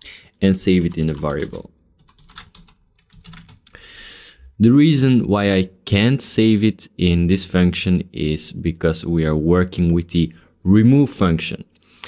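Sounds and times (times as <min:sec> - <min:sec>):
typing on computer keyboard: 0:00.8 - 0:03.6.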